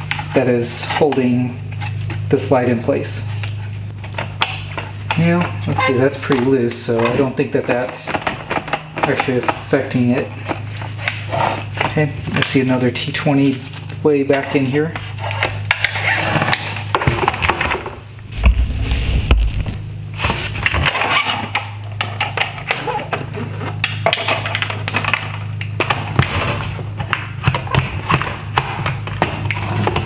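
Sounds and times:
steady low hum: 0:00.0 - 0:30.0
low thump: 0:18.2 - 0:19.9.

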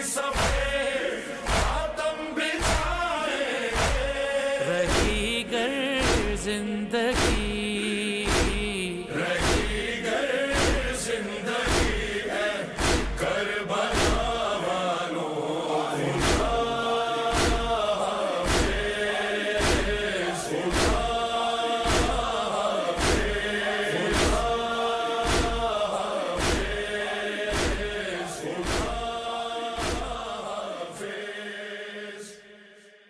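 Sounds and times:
rhythmic chest-beating slaps: 0:00.0 - 0:14.8, 0:15.8 - 0:31.1
men chanting in unison: 0:00.0 - 0:33.0.

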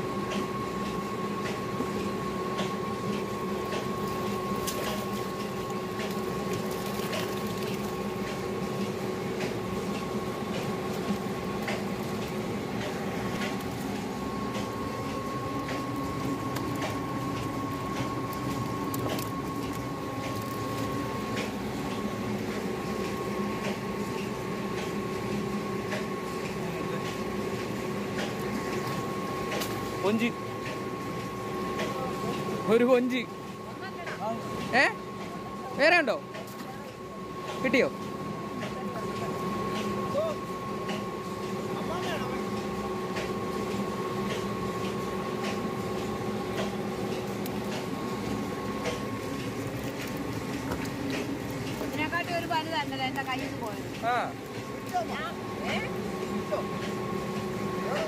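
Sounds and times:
steady hum: 0:00.0 - 0:58.0
fish flapping: 0:04.0 - 0:08.2, 0:18.0 - 0:20.9.

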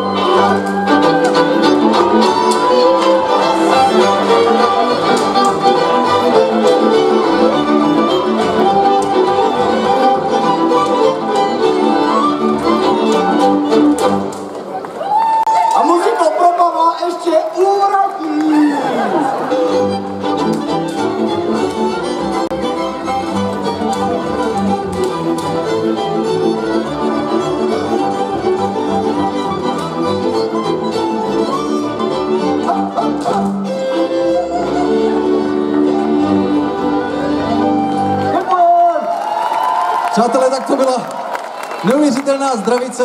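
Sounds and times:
fiddle-led string band music: 0:00.0 - 0:15.0, 0:18.9 - 0:39.1.

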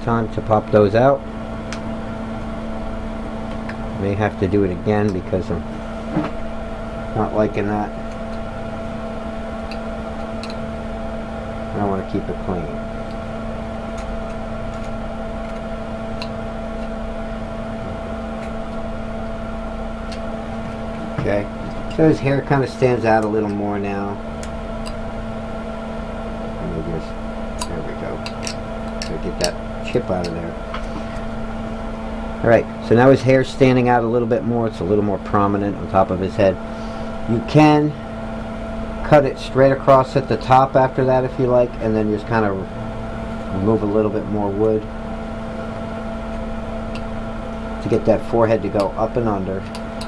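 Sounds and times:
steady machine hum: 0:00.0 - 0:50.0.

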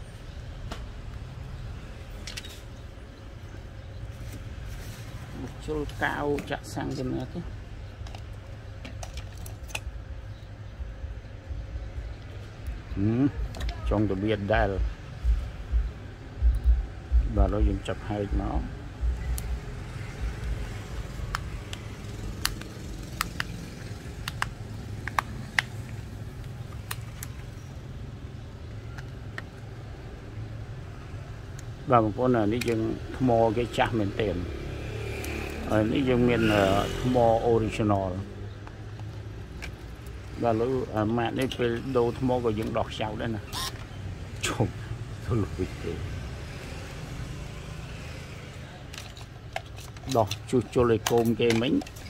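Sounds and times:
faint handling sound: 0:04.0 - 0:06.8
low background rumble: 0:09.4 - 0:17.9.

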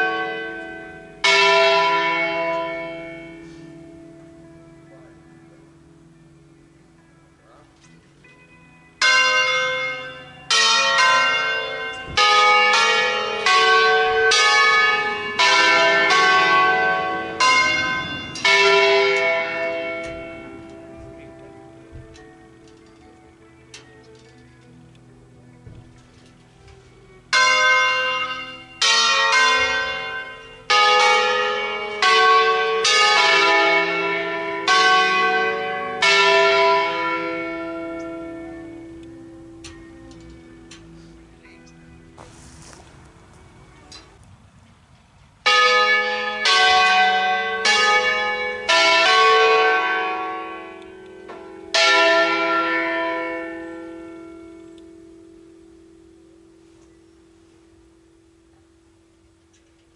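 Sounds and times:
church bells ringing: 0:00.0 - 0:59.9.

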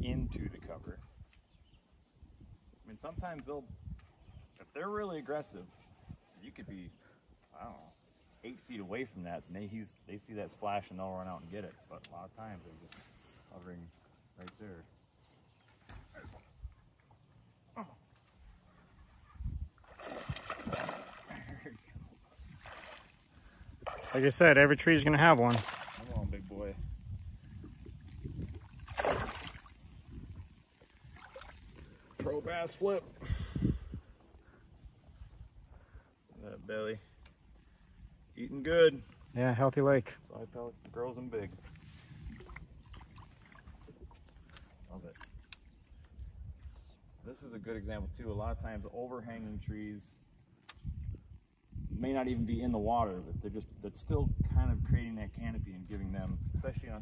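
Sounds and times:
small water splashes and drips: 0:19.8 - 0:21.8, 0:22.4 - 0:24.5, 0:25.3 - 0:26.6, 0:27.5 - 0:32.4, 0:41.6 - 0:46.7
fish splashing in water: 0:19.9 - 0:21.4, 0:25.5 - 0:26.2, 0:28.6 - 0:29.9.

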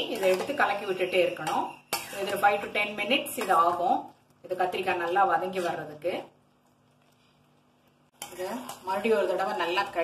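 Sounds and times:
spatula scraping a metal pan: 0:00.0 - 0:02.7.

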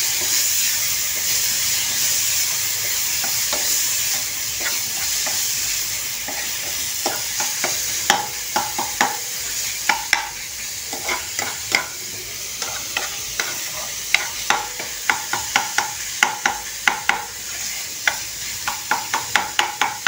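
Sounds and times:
metal spoon scraping a pan: 0:00.0 - 0:18.8
vegetables sizzling in oil: 0:00.0 - 0:20.0.

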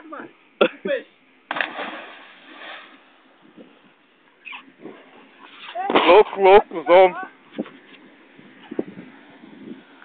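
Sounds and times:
person splashing into water: 0:01.5 - 0:03.0.

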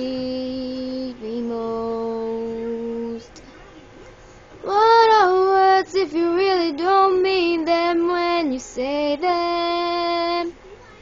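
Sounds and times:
young voice singing: 0:00.0 - 0:03.3, 0:04.6 - 0:10.6.

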